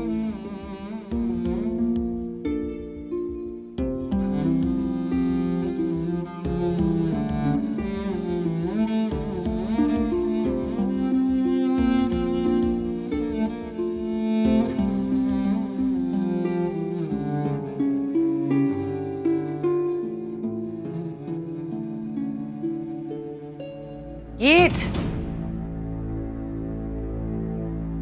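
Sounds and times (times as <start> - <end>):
dramatic background music: 0.0 - 28.0.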